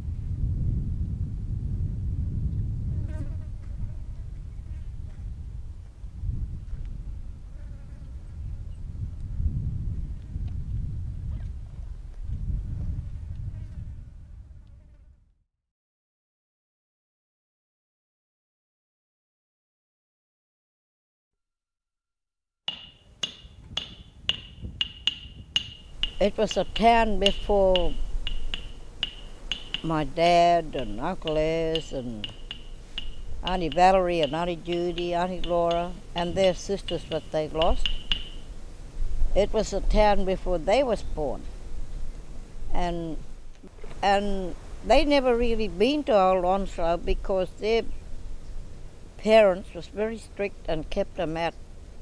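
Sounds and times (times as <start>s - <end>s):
sharp ringing ticks: 22.7s - 38.5s
flies buzzing: 24.8s - 39.8s, 40.5s - 46.3s.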